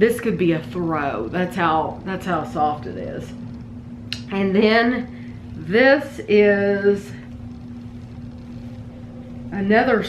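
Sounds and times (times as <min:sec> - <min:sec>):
constant hum tone: 0:00.0 - 0:10.0
low rumble: 0:00.0 - 0:10.0.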